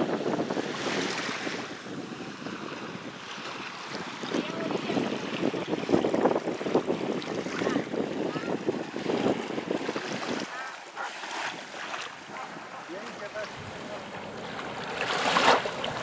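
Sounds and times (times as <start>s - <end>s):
sea waves lapping shore: 0.0s - 16.0s
wind buffeting microphone: 0.0s - 16.0s.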